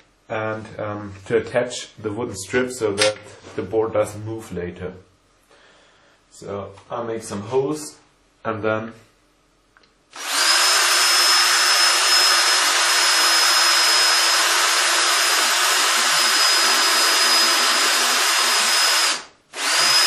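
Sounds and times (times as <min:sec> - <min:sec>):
electric drill whining: 0:10.1 - 0:20.0.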